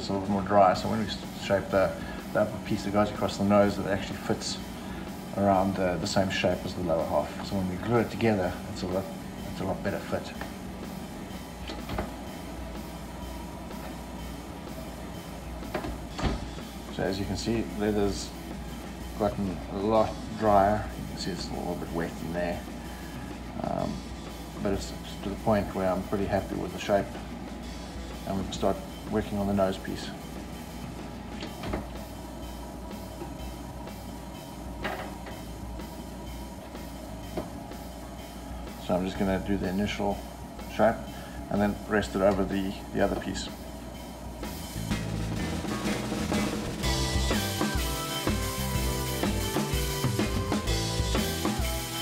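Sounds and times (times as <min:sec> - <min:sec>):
steady low hum: 0:00.0 - 0:52.0.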